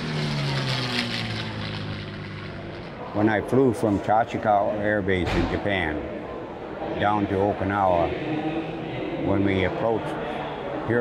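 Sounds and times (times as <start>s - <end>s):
propeller plane engine fly-by: 0.0s - 3.2s.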